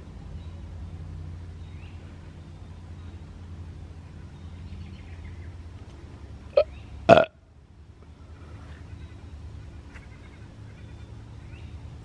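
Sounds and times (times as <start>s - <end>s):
short vocal sounds: 6.6s - 7.3s.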